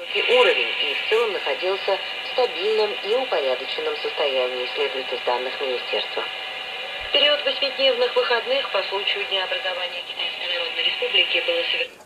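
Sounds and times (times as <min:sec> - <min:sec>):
steady radio hiss: 0:00.0 - 0:12.0
thin radio voice on loudspeaker: 0:00.0 - 0:12.0.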